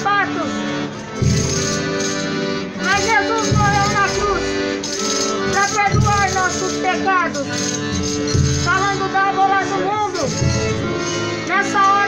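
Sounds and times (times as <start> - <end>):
accordion chords: 0.0 - 12.0
shaken rattle: 4.8 - 6.8.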